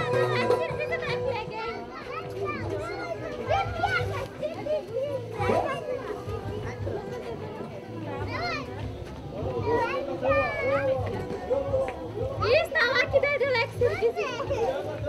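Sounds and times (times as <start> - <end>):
background music: 0.0 - 15.0
women and children talking: 0.0 - 15.0.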